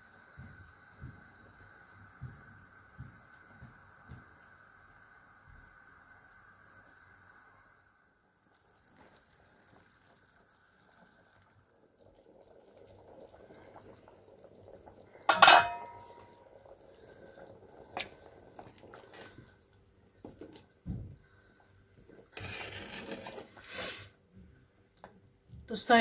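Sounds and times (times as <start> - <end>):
stew bubbling in a metal pot: 8.3 - 26.0
metal clanking on a pot: 15.3 - 16.3.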